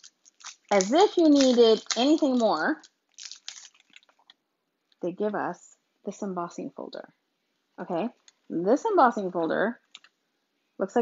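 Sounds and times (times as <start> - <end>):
plastic packaging crackling: 0.0 - 4.4.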